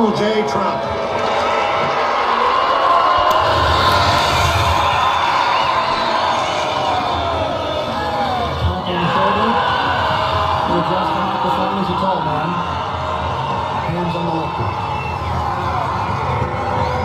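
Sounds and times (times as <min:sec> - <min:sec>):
crowd noise: 0:00.0 - 0:17.0.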